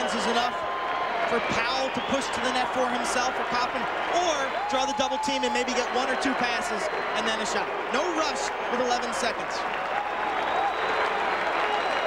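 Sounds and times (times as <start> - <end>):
stadium crowd clapping and shouting: 0.0 - 12.0.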